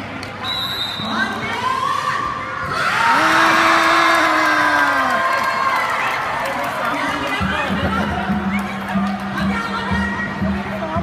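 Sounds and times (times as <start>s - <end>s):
crowd cheering and shouting: 1.4s - 10.4s.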